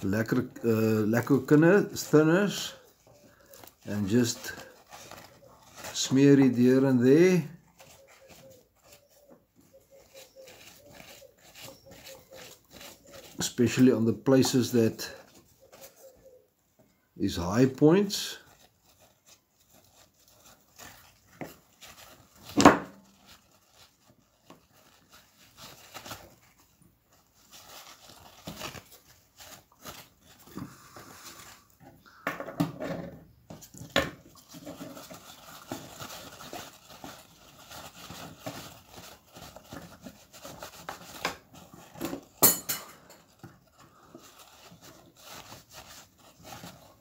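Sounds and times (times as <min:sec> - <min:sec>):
paper towel rubbing metal model: 0:00.0 - 0:16.5, 0:17.2 - 0:31.8, 0:33.6 - 0:47.0.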